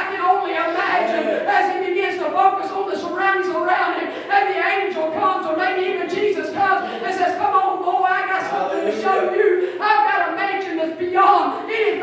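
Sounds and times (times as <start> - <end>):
woman speaking into a microphone: 0.0 - 12.0.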